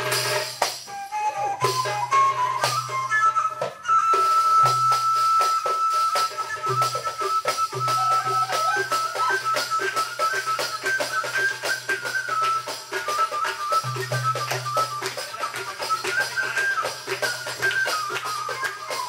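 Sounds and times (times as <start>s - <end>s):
hand percussion strokes: 0.0s - 19.0s.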